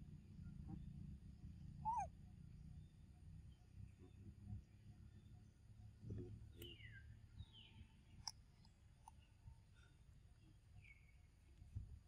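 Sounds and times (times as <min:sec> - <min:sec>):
macaque coo call: 0:01.8 - 0:02.1.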